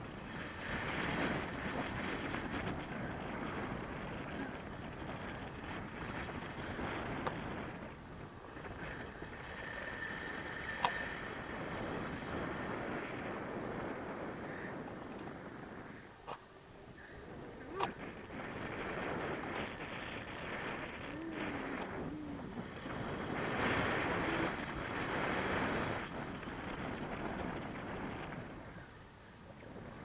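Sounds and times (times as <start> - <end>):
wind rushing over microphone: 0.0 - 29.0.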